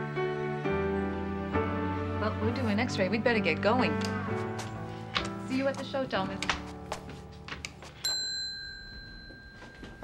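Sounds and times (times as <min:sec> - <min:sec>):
service bell ding: 0:08.0 - 0:10.0.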